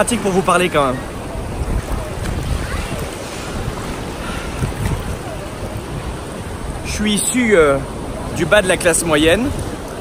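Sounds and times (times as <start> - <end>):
sea surf washing: 0.0 - 10.0
wind rumbling on microphone: 0.0 - 10.0.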